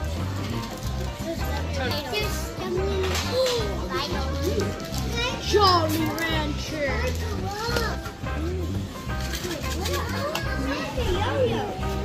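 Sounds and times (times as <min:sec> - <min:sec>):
children talking and exclaiming: 0:00.0 - 0:12.0.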